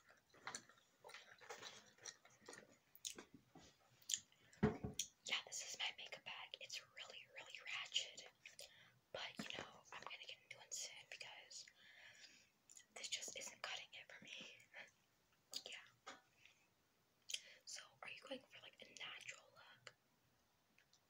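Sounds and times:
girl whispering: 0:05.3 - 0:08.2, 0:13.0 - 0:14.9, 0:17.7 - 0:19.9.

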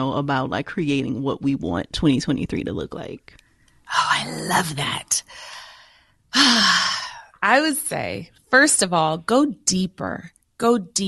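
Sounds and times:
woman sighing: 0:05.3 - 0:07.4.

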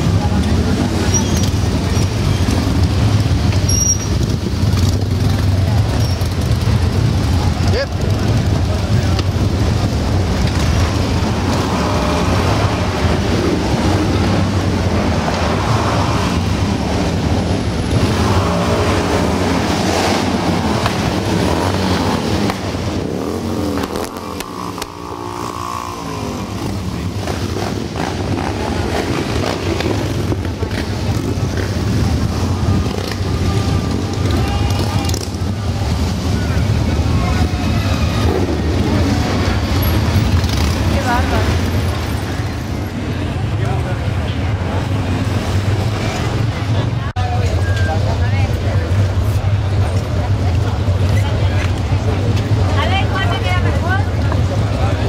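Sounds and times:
motorcycles rumbling and revving: 0:00.0 - 0:55.0.

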